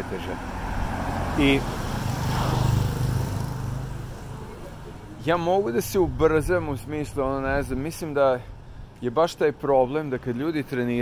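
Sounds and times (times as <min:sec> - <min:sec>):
vehicle engine passing by: 0:00.3 - 0:05.3.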